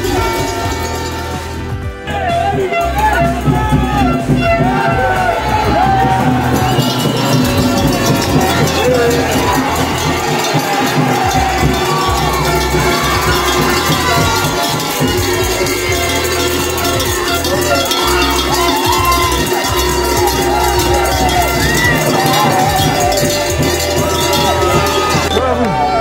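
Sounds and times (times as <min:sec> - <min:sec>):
metal cowbells ringing: 0:00.0 - 0:01.8, 0:02.6 - 0:25.6
crowd cheering and shouting: 0:00.0 - 0:26.0.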